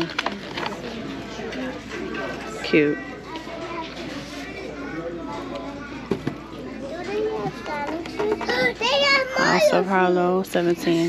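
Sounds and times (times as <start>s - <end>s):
children talking and calling out: 2.8s - 10.1s.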